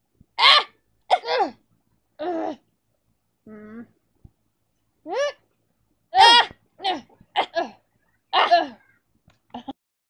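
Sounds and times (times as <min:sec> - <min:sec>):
young person's wordless vocal sounds: 0:03.5 - 0:04.0, 0:06.2 - 0:07.8.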